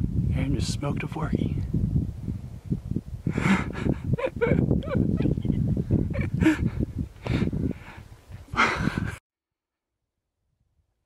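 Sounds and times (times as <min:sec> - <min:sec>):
man laughing: 0:03.3 - 0:06.8, 0:08.6 - 0:09.2.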